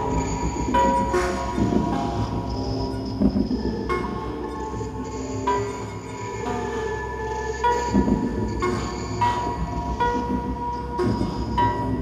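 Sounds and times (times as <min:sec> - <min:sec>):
electronic synthesizer music: 0:00.0 - 0:12.0.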